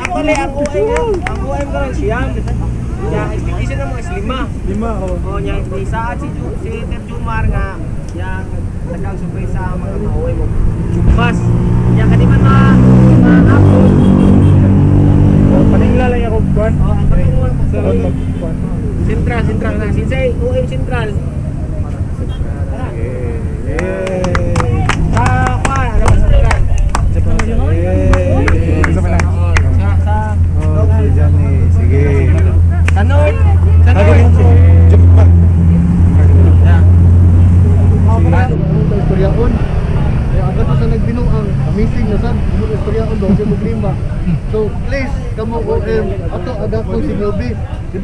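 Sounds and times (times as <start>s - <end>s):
people talking in a group: 0.0s - 48.0s
people's voices: 0.0s - 48.0s
vehicle engine running: 7.7s - 45.6s
loud low rumble: 23.0s - 43.2s.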